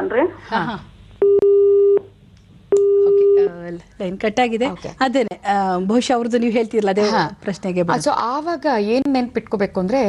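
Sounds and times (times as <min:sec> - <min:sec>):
telephone busy tone beep: 0:01.2 - 0:02.1.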